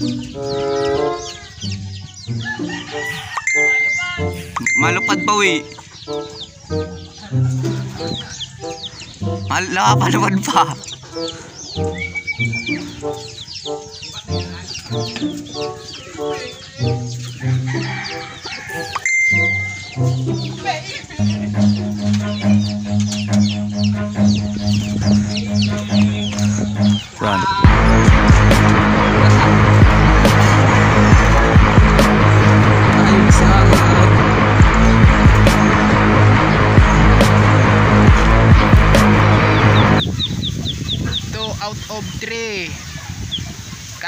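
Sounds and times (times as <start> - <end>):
background music: 0.0 - 40.2
chickens clucking: 0.0 - 44.0.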